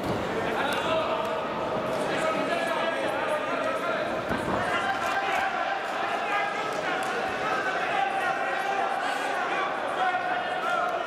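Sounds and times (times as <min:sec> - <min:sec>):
voices of spectators and coaches: 0:00.0 - 0:11.0.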